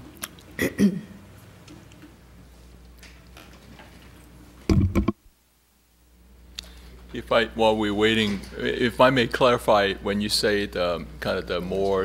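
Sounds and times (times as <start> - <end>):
loud thump: 4.7 - 5.2.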